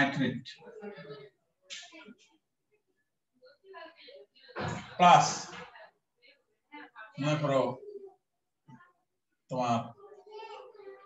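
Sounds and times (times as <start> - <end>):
man speaking: 0.0 - 0.6, 4.9 - 5.5, 7.2 - 7.8, 9.5 - 10.0.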